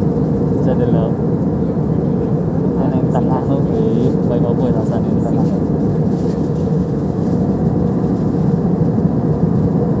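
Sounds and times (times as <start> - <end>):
airliner cabin engine rumble: 0.0 - 10.0.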